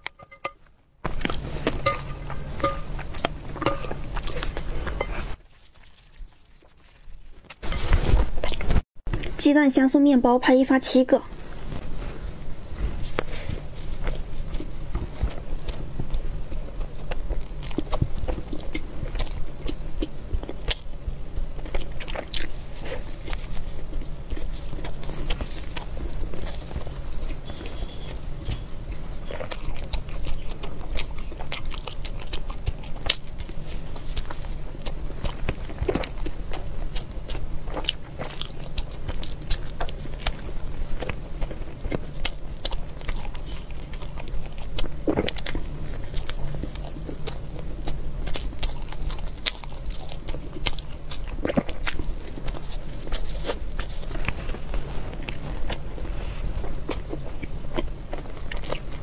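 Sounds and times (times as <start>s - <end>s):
steady low hum: 0.0s - 59.0s
person chewing bread: 1.1s - 9.3s, 11.3s - 59.0s.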